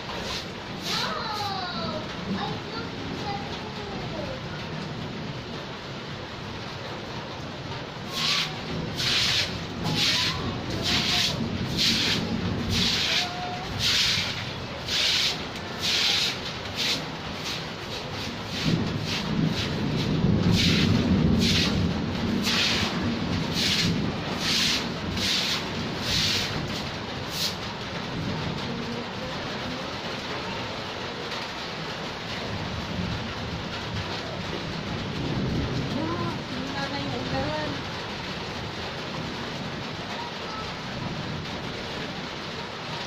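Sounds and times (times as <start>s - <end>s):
rain on concrete: 0.0s - 43.0s
hand tool scraping wet concrete: 23.6s - 26.5s.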